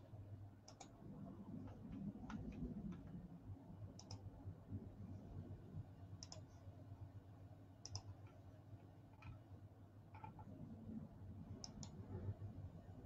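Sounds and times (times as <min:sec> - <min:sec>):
sharp clicks: 0:06.2 - 0:06.4, 0:07.8 - 0:08.1.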